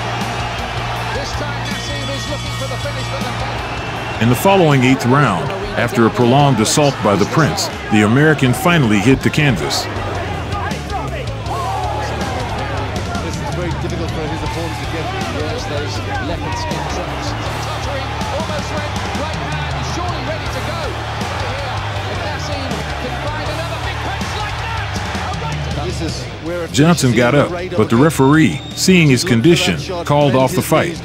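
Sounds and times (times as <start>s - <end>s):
background music with bass and beat: 0.0s - 28.8s
crowd voices: 0.0s - 31.0s.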